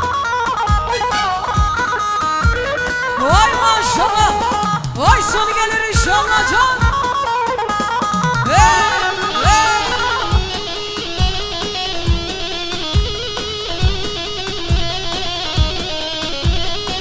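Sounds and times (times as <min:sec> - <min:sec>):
electric plucked string melody: 0:00.0 - 0:17.0
deep drum beats: 0:01.6 - 0:07.3, 0:08.1 - 0:17.0.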